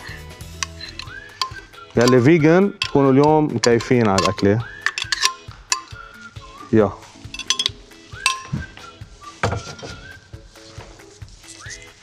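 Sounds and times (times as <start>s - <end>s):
soft background music: 0.0s - 12.0s
blender jar and utensils clinking: 0.5s - 6.0s, 7.4s - 8.6s.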